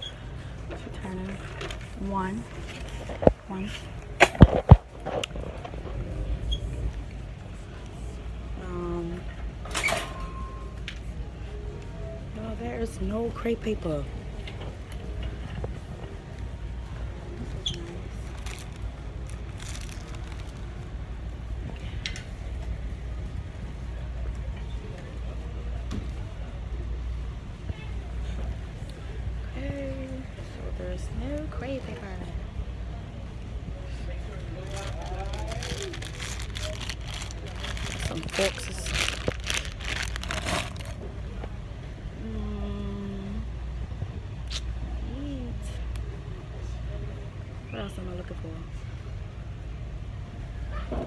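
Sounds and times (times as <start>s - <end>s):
low store hum: 0.0s - 51.0s.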